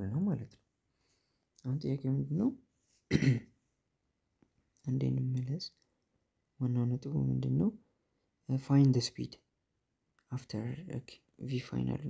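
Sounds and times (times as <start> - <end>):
man clearing his throat: 3.1 - 3.5.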